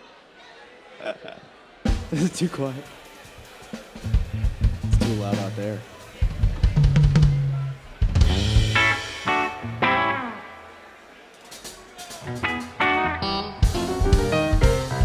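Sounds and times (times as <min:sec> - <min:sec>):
drum kit hits: 0:01.9 - 0:02.3, 0:06.2 - 0:09.5, 0:12.2 - 0:15.0
electric bass notes: 0:06.8 - 0:10.4, 0:12.4 - 0:15.0.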